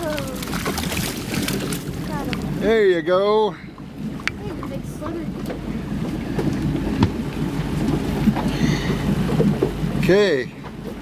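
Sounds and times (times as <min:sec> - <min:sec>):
water slapping boat hull: 0:00.0 - 0:11.0.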